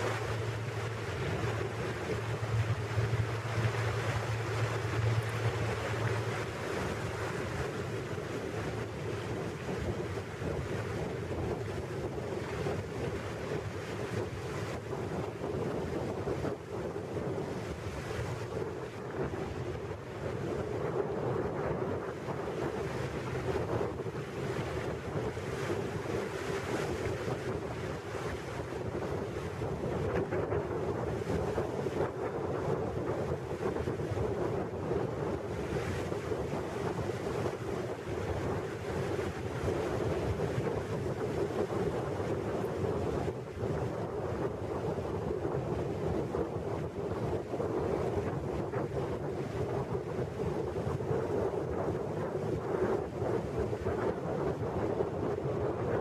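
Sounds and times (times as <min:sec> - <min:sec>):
boat motor drone: 0:00.0 - 0:46.2
water rushing past hull: 0:00.0 - 0:56.0
wind buffeting microphone: 0:00.0 - 0:56.0.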